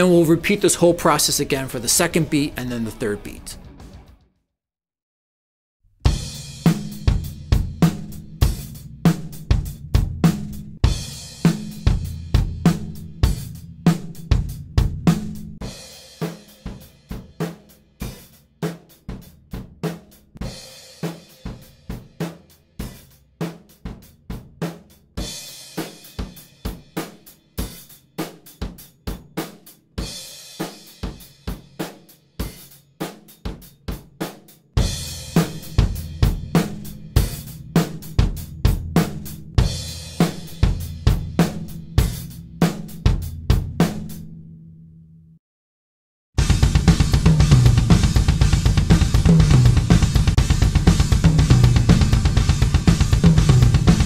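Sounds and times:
drum kit playing a groove: 0.0s - 4.1s, 6.0s - 44.3s, 46.4s - 54.0s.

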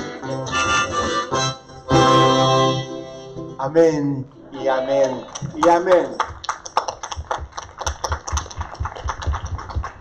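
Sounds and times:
crowd applauding: 4.8s - 10.0s.

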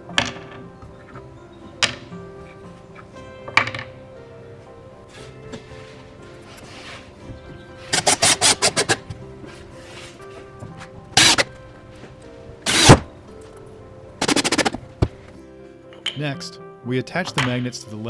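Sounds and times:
background music: 0.0s - 18.0s
power drill driving screws: 12.7s - 13.0s.

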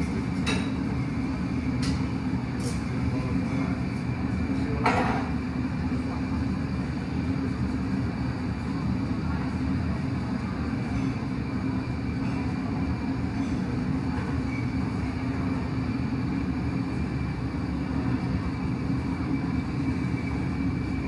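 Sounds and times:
gas furnace roar: 0.0s - 21.0s.

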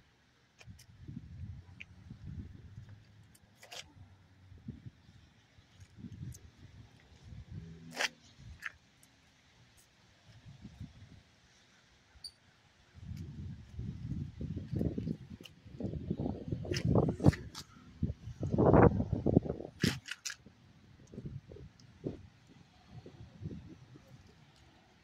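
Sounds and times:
camera microphone handling rumble: 5.7s - 8.7s, 13.0s - 22.2s.

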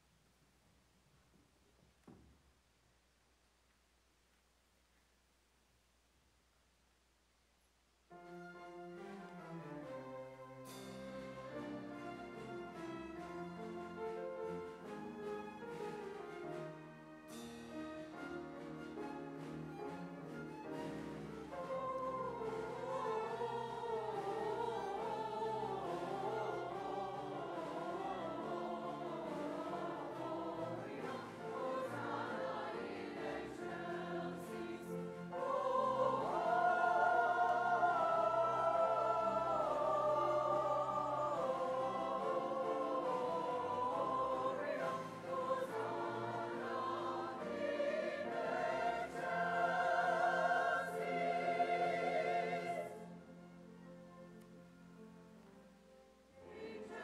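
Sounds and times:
string orchestra: 8.2s - 57.0s
church choir singing: 20.5s - 53.8s, 56.3s - 57.0s.

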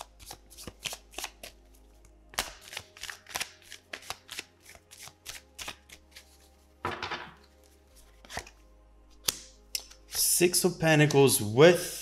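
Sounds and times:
cards being shuffled by hand: 0.0s - 1.6s, 2.3s - 8.6s.

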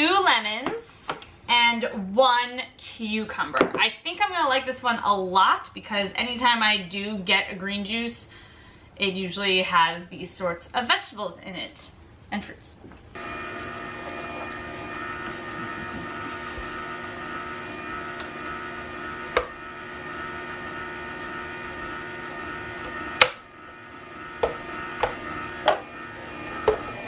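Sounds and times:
juicer motor humming: 13.2s - 27.0s.

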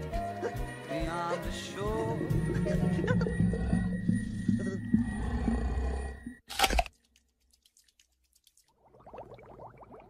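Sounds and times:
deep low monster growl: 2.0s - 6.4s.

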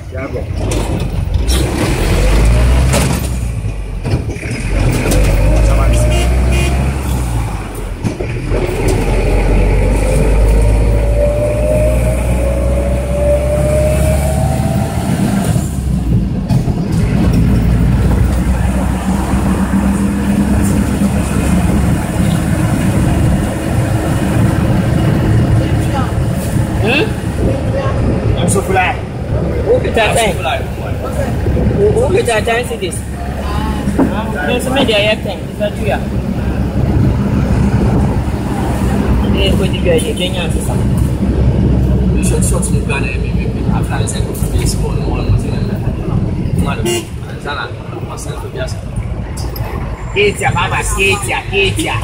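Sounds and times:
minibus engine accelerating: 0.0s - 52.0s
road rumble: 0.0s - 52.0s.

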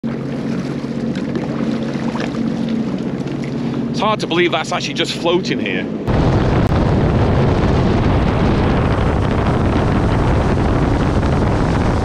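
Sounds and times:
watercraft engine idling: 0.0s - 12.0s.

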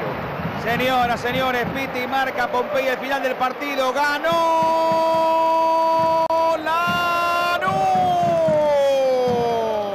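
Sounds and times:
stadium crowd noise: 0.0s - 9.9s
commentator's long shout: 4.0s - 9.9s.

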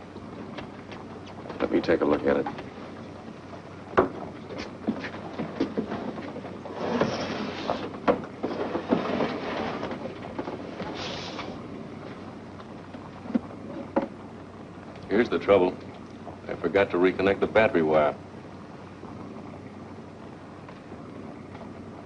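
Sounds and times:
radio hiss: 10.8s - 11.6s.

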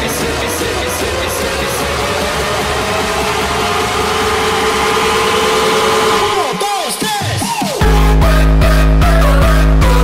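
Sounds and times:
dense noisy electronic bed: 0.0s - 9.0s.

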